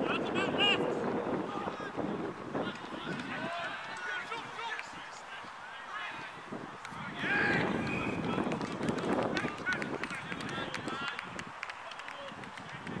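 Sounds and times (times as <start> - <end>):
players shouting: 2.7 - 12.4.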